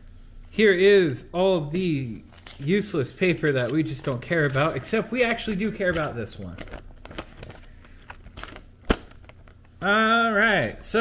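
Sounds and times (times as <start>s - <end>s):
paper leaflet rustling: 2.0s - 9.8s
paper snap: 3.4s - 7.5s, 8.1s - 9.5s.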